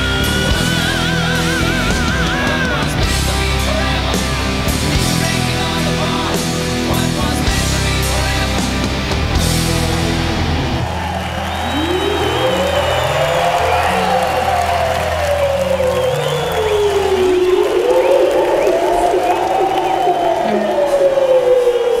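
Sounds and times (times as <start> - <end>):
rock band held low notes: 0.0 - 17.8
crowd cheering: 0.0 - 22.0
swooping tones: 11.5 - 22.0.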